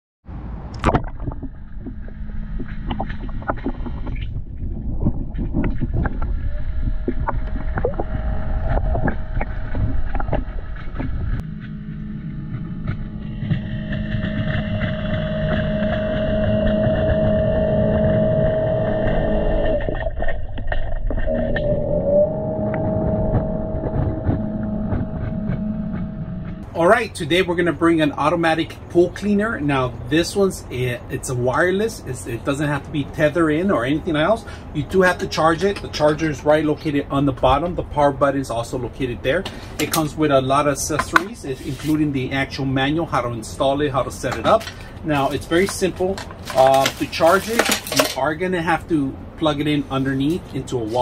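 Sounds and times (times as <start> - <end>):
motor whine: 1.4 - 4.5, 6.0 - 20.0, 21.3 - 26.6.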